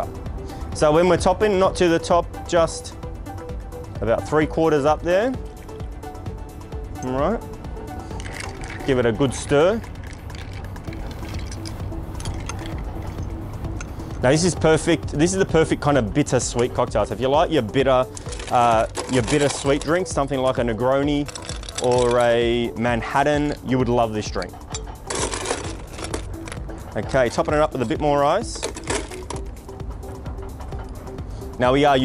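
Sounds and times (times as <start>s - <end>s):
background music with steady pulse: 0.0s - 32.0s
spoon clinking ice in glass: 9.8s - 13.1s.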